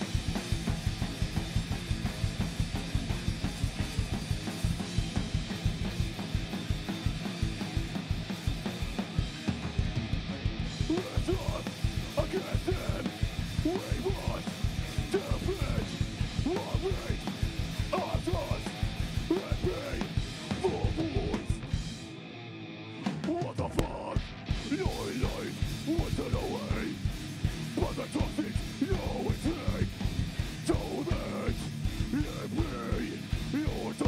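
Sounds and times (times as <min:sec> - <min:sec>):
fast dense drumming: 0:00.0 - 0:22.0, 0:23.2 - 0:34.0
guitars: 0:00.0 - 0:34.0
shouted vocals: 0:27.8 - 0:30.0, 0:30.6 - 0:34.0.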